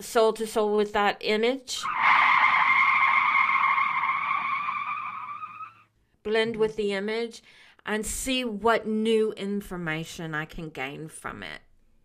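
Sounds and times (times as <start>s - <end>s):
tyre screech: 1.8s - 5.8s.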